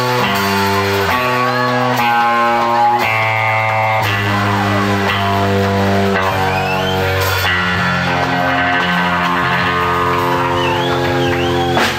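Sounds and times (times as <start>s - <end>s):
electric blues band playing: 0.0s - 11.9s.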